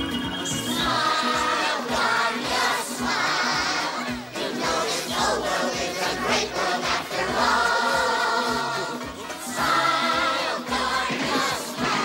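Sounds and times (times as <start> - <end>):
chorus singing: 0.0 - 12.0.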